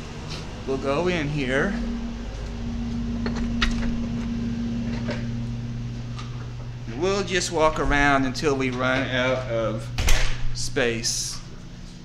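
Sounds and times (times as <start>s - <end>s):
lower hum: 0.0s - 12.0s
steady hum: 0.0s - 12.0s.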